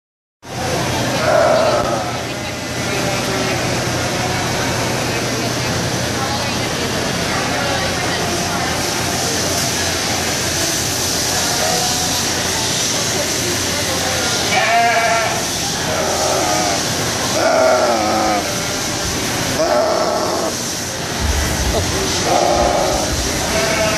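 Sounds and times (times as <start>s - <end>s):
chatter in livestock barn: 0.4s - 23.9s
sheep bleating: 14.5s - 16.8s, 22.2s - 23.9s.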